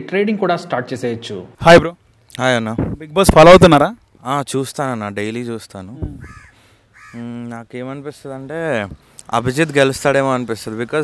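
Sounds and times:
crow cawing: 6.1s - 7.3s.

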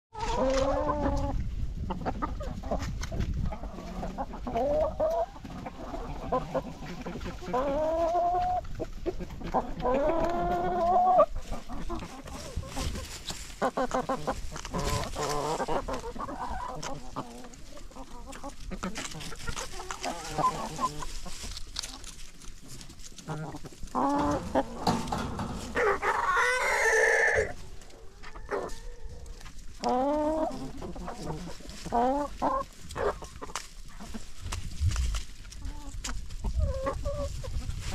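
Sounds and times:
drawn-out hen calls: 0.1s - 37.9s
hens clucking: 0.1s - 37.9s
chicken long call: 23.4s - 33.2s.

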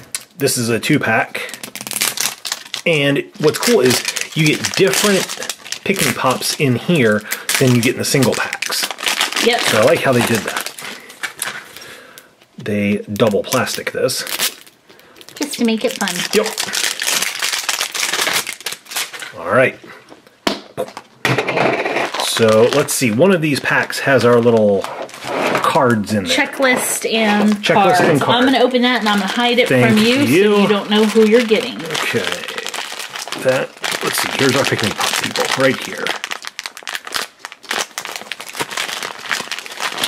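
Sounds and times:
foil packs crinkling: 0.0s - 12.5s, 13.1s - 19.4s, 21.9s - 26.6s, 27.2s - 40.0s.

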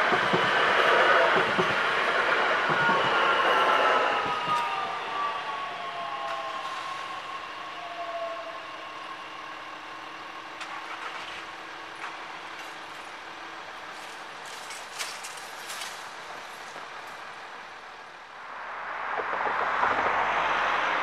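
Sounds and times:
electric train drive whining: 0.0s - 14.9s.

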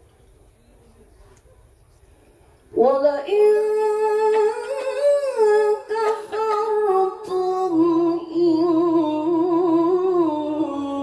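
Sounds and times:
woman reciting melodically: 2.7s - 11.0s.

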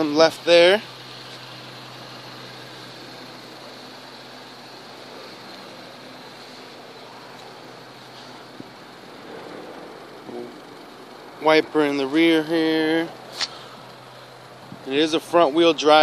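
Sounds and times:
low mechanical hum: 0.0s - 16.0s
outdoor background hiss: 0.0s - 16.0s.

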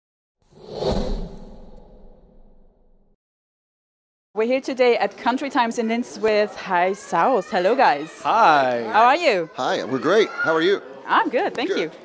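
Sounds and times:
whoosh sound effect: 0.5s - 3.1s
low boom: 0.7s - 3.2s.

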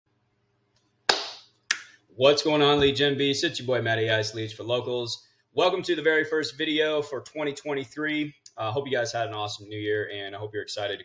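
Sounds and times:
sharp hand claps: 1.1s - 2.0s.

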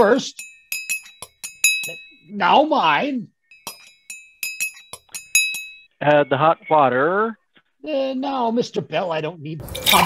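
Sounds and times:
teaspoon clinking against a cup: 0.3s - 2.2s, 3.5s - 5.9s.

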